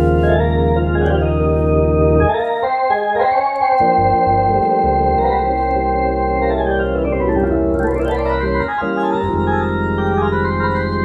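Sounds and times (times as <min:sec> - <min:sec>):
deep organ pedal bass: 0:00.0 - 0:11.0
organ held chords: 0:00.0 - 0:11.0.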